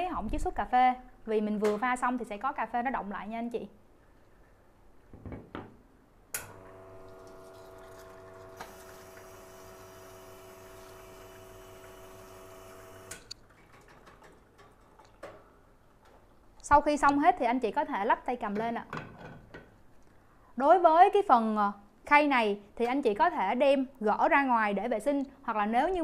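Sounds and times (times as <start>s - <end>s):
pump hum: 6.5s - 13.3s
water running: 6.6s - 15.2s.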